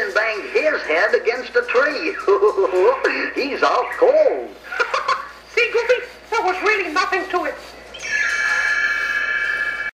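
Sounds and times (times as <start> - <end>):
high-pitched held tone: 7.9 - 10.0.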